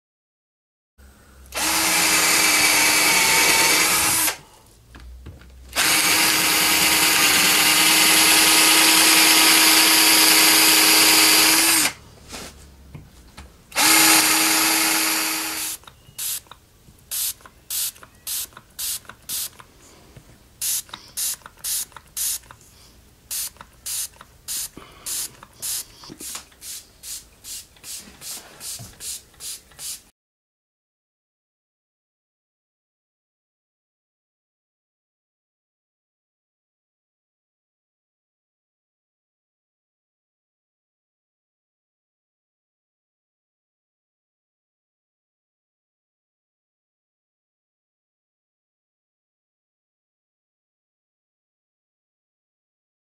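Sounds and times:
cordless drill boring into wood: 1.5 - 4.4, 5.7 - 12.0, 13.8 - 16.4.

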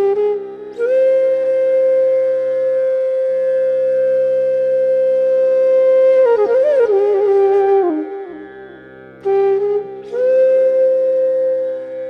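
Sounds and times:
bamboo flute playing: 0.0 - 12.0.

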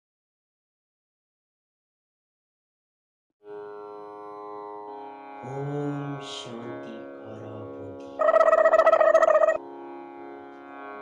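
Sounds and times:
devotional music with drone: 3.6 - 11.0
loud fluttering ringing tone: 8.2 - 9.6.

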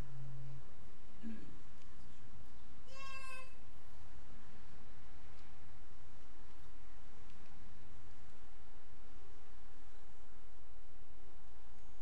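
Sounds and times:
steady background hiss: 0.0 - 12.0
child crying: 2.9 - 3.6.

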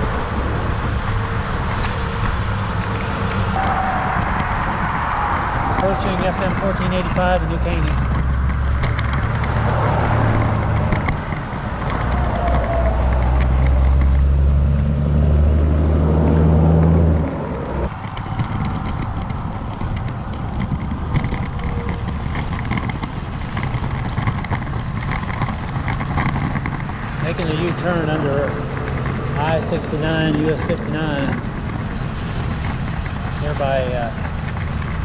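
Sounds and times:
road traffic: 0.0 - 35.0
wind rumbling on microphone: 0.0 - 35.0.

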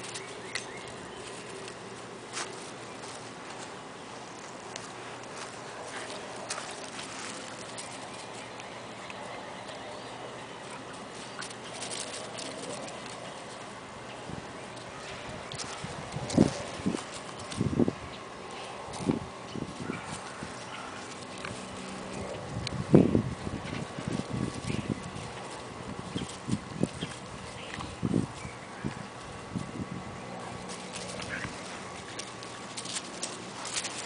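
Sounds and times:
paws scuffling in dry leaves: 0.0 - 34.0.

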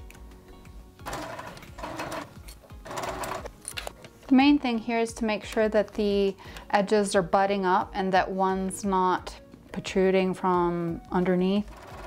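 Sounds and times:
sewing machine stitching: 1.0 - 3.5, 11.6 - 12.0.

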